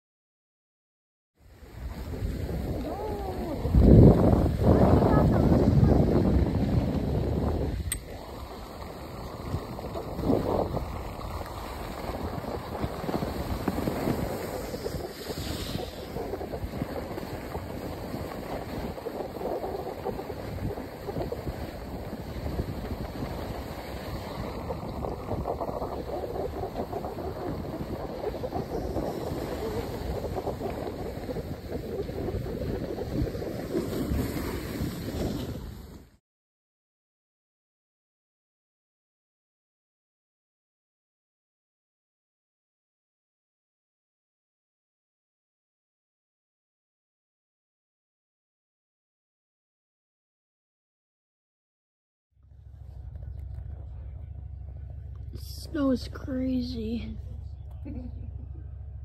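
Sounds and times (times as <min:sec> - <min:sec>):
skis sliding over snow: 0:01.5 - 0:36.2
wind on microphone: 0:01.5 - 0:36.2.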